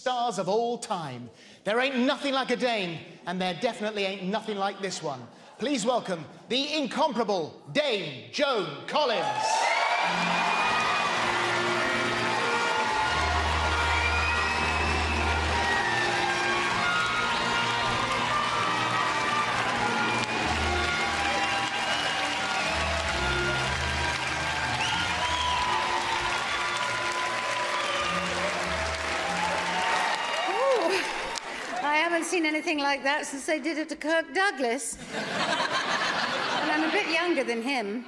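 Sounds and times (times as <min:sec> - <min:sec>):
audience applauding: 0:09.2 - 0:32.4.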